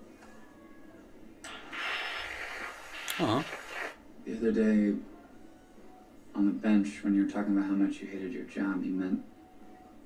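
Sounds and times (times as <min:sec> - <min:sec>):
sudden rushing hiss: 0:01.5 - 0:04.0.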